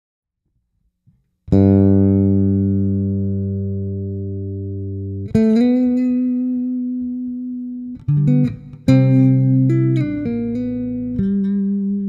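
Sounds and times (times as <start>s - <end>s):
bass guitar notes: 1.5s - 12.0s.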